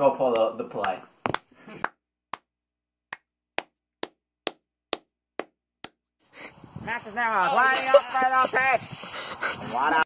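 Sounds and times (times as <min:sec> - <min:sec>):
sharp knocks or claps: 0:00.3 - 0:02.5, 0:03.1 - 0:06.0.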